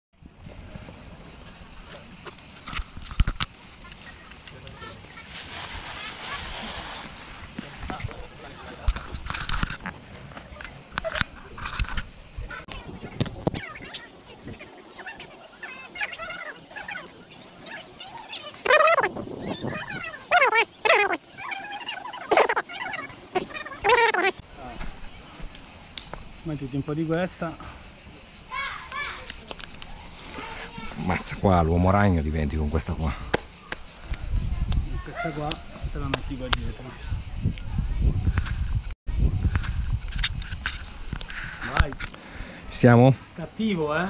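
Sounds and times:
high-pitched hiss: 0:00.2 - 0:44.0
voices: 0:03.5 - 0:38.6.

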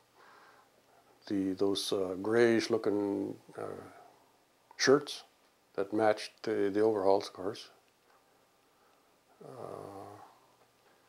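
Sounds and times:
man humming in hesitation: 0:09.4 - 0:10.4.

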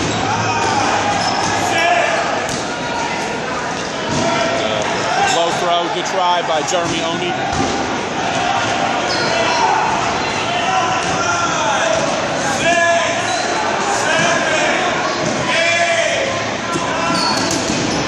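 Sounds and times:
players shouting: 0:00.0 - 0:18.0
balls bouncing on gym floor: 0:02.4 - 0:02.8, 0:04.0 - 0:04.4, 0:06.6 - 0:08.5.

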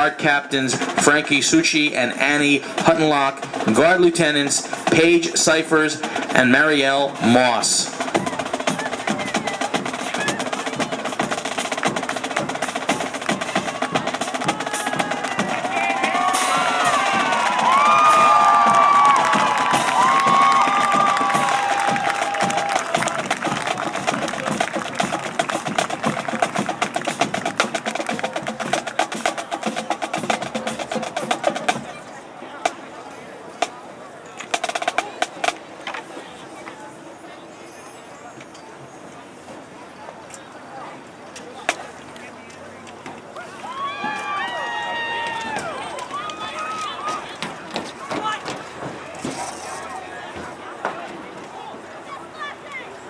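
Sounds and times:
drumline playing: 0:00.0 - 0:33.0, 0:33.6 - 0:36.1, 0:42.9 - 0:51.5
voices calling out: 0:00.0 - 0:39.2, 0:39.8 - 0:53.0.

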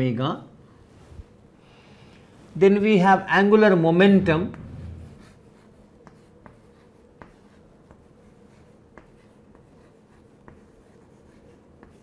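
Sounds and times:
chalk writing on chalkboard: 0:04.5 - 0:12.0
chalk tapping on board: 0:05.2 - 0:12.0.

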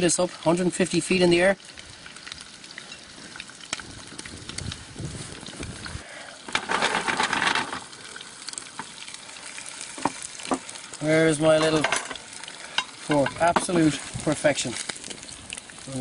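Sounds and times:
meat sizzling in oil: 0:00.0 - 0:16.0.

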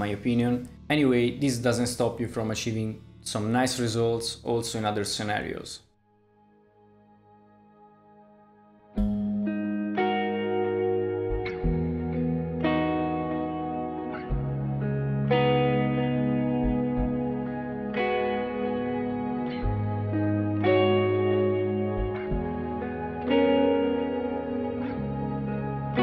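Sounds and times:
clean electric guitar chords: 0:06.3 - 0:26.0.

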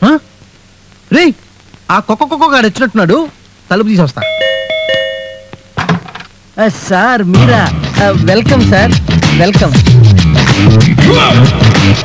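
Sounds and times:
electronic doorbell chime: 0:04.2 - 0:05.8.

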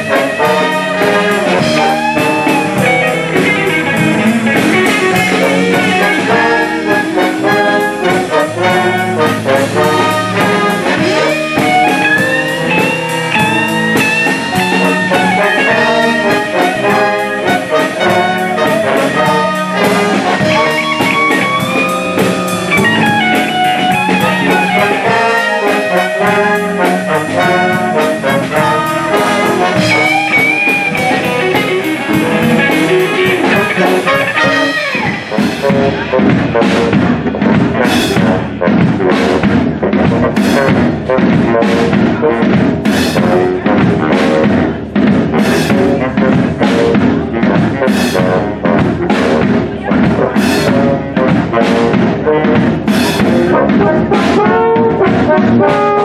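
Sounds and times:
drum kit hits and cymbals: 0:00.0 - 0:56.0
jazz big band playing: 0:00.0 - 0:56.0.

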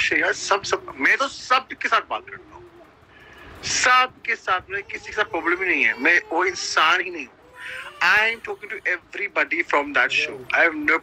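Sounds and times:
man speaking in sliding tones: 0:03.6 - 0:11.0.

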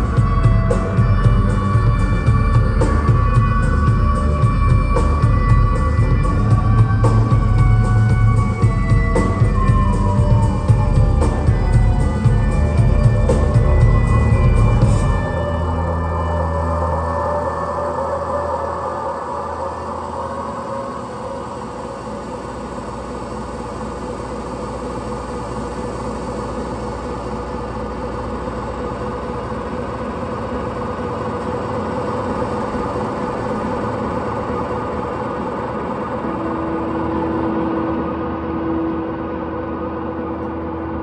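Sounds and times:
sustained high note: 0:00.0 - 0:24.3
band droning amplified noise: 0:00.0 - 0:41.0.

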